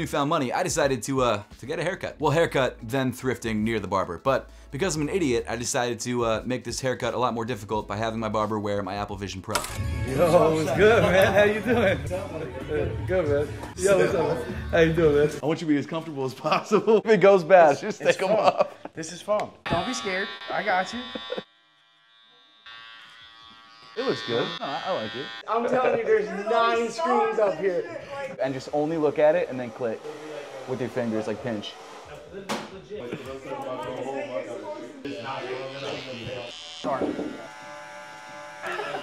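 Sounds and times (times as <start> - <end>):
person laughing: 17.9 - 19.0, 20.9 - 21.5, 38.6 - 39.0
electric hair clippers buzzing: 19.6 - 25.5, 29.5 - 32.1, 35.1 - 39.0
voice: 24.0 - 37.4.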